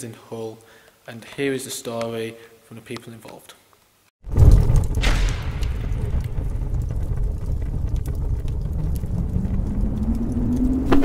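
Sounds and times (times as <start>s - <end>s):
deep rumble with crackles: 4.2s - 11.0s
short hit: 4.3s - 7.8s
low rising tone: 5.9s - 11.0s.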